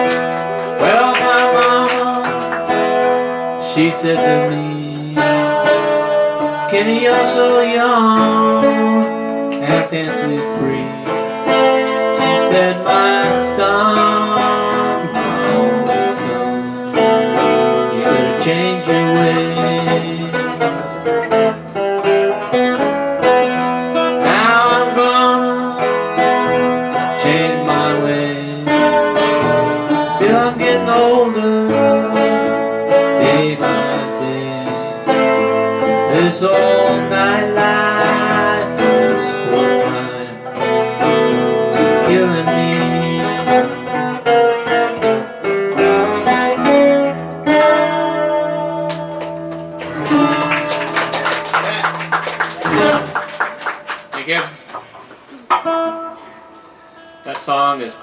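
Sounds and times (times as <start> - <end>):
acoustic guitars playing blues: 0.0 - 58.0.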